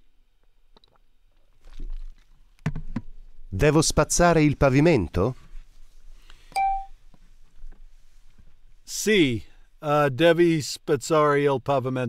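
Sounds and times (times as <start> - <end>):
short electronic beep: 6.6 - 6.9.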